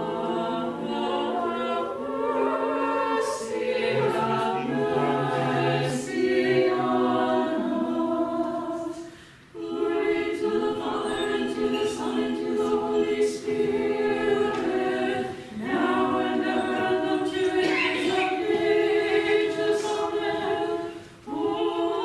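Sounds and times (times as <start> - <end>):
choir chanting unaccompanied: 0.0 - 22.0.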